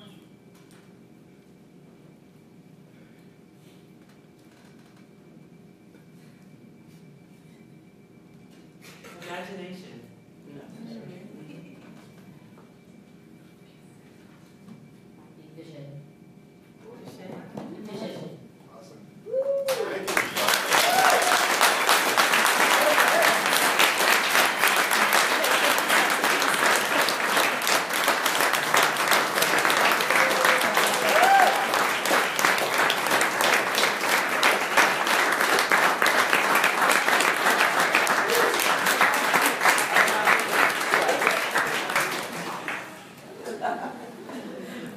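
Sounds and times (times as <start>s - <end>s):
audience applauding: 19.7s - 43.0s.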